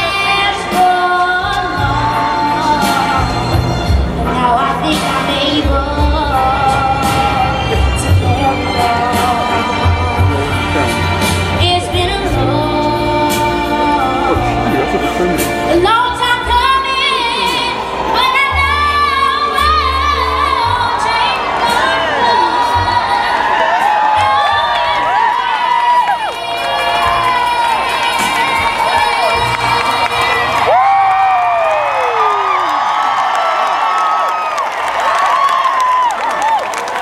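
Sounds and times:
girl singing: 0:00.0 - 0:03.1, 0:04.4 - 0:07.4, 0:15.8 - 0:23.4
crowd cheering and whooping: 0:06.3 - 0:09.8, 0:17.4 - 0:37.0.

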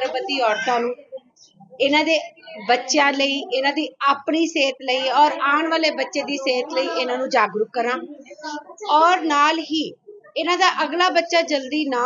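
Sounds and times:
woman speaking high-pitched: 0:00.0 - 0:01.2, 0:01.8 - 0:12.0.

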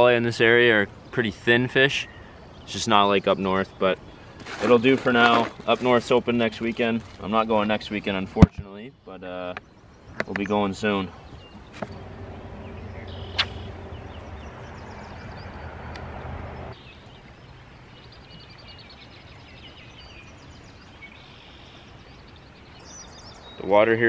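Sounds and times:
faint bird chirping: 0:00.0 - 0:24.0
outdoor ambience: 0:00.0 - 0:24.0
plastic cooler being handled: 0:04.4 - 0:07.4.

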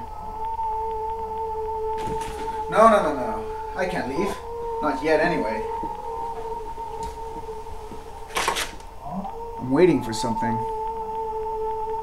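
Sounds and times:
eerie electronic drone: 0:00.0 - 0:12.0.

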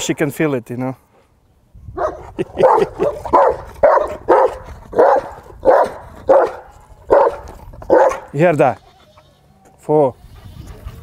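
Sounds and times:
dog barking: 0:02.0 - 0:08.3.

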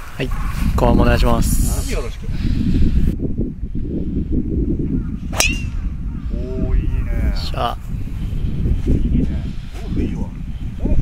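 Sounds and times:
golf club striking ball: 0:05.3 - 0:05.8.

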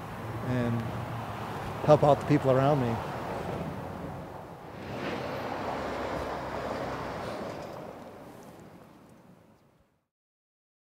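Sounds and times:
steady outdoor rush: 0:00.0 - 0:09.7.

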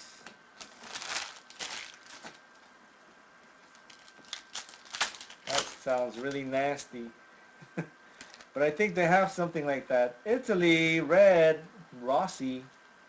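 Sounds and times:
cards rustling: 0:00.6 - 0:02.7, 0:03.6 - 0:06.5.

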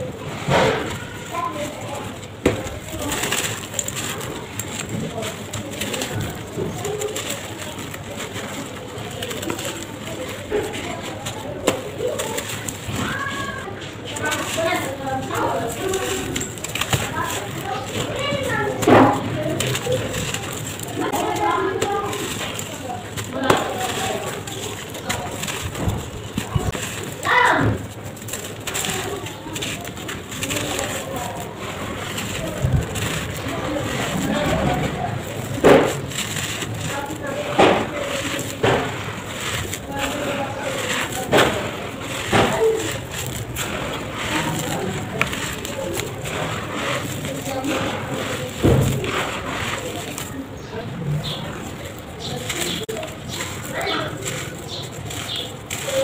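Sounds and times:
gritty crunching of crumbled cement: 0:00.0 - 0:56.0
sand pouring between fingers: 0:01.3 - 0:56.0.

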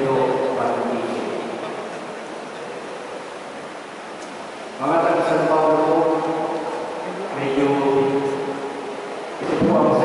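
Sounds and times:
man's voice in reverberant room: 0:00.0 - 0:01.9, 0:04.8 - 0:10.0.

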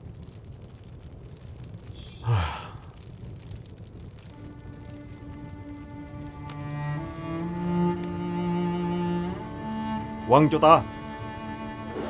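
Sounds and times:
man exhaling: 0:01.9 - 0:03.0
low sustained string music: 0:04.3 - 0:12.0.

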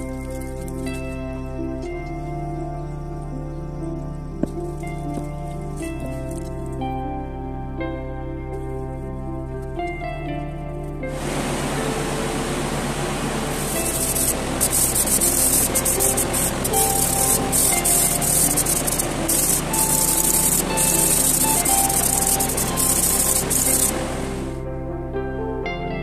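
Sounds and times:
background music: 0:00.0 - 0:26.0
paint spray gun hissing: 0:11.1 - 0:24.6.

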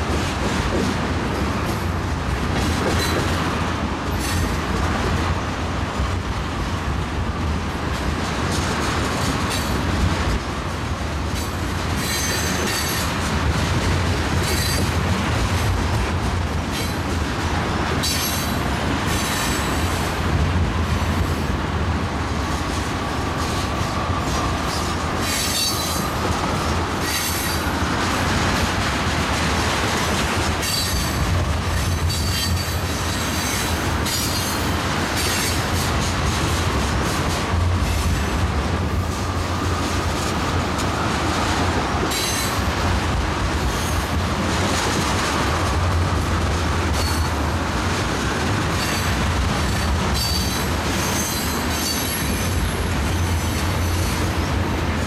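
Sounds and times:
rail joint clicks: 0:00.0 - 0:55.0
train wheels rumbling on rails: 0:00.0 - 0:55.0.

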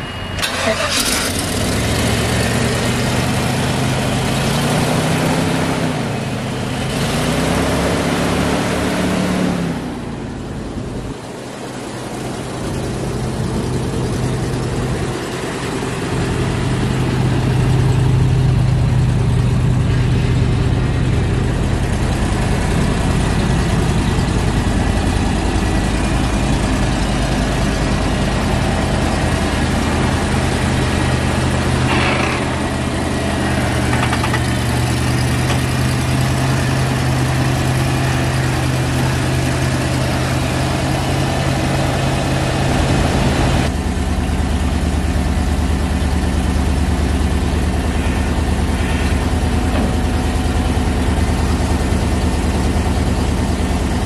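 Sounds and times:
truck engine idling: 0:00.0 - 0:08.5, 0:09.6 - 0:54.0.

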